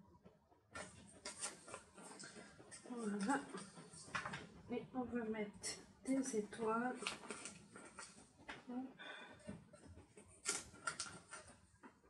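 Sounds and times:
paper sticker sheet rustling: 0:07.0 - 0:08.1.

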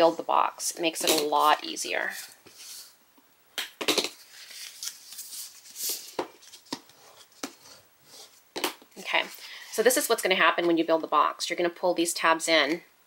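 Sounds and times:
paper rustling: 0:04.0 - 0:09.6.

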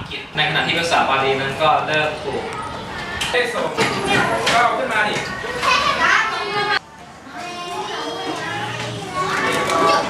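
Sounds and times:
children chattering: 0:00.6 - 0:10.0.

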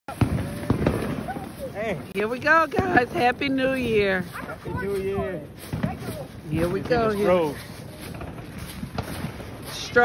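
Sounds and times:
fireworks cracking and popping: 0:00.1 - 0:10.0
fireworks crackling: 0:00.1 - 0:10.0.

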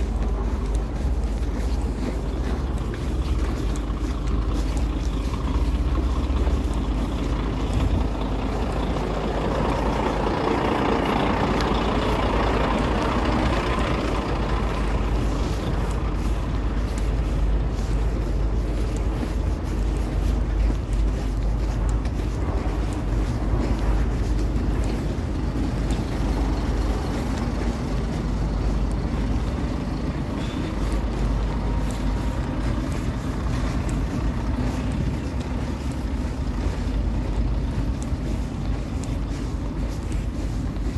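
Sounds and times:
truck diesel engines idling: 0:00.0 - 0:40.9.

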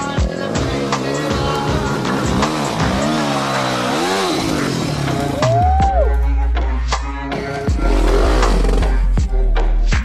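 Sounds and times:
dirt bike engine revving: 0:00.0 - 0:05.6, 0:06.6 - 0:09.3.

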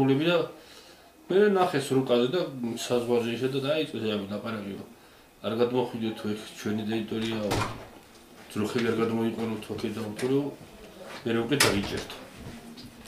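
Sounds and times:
man speaking: 0:01.3 - 0:07.8, 0:08.5 - 0:10.6, 0:11.2 - 0:12.3.

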